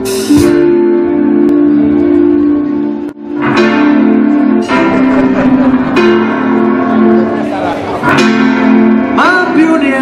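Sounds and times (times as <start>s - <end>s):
live band holding a chord: 0.0s - 10.0s.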